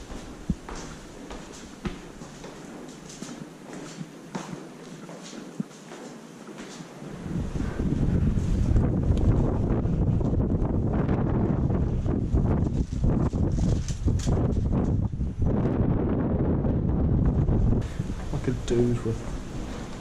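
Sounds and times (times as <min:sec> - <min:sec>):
wind buffeting microphone: 0:00.0 - 0:04.2, 0:06.9 - 0:20.0.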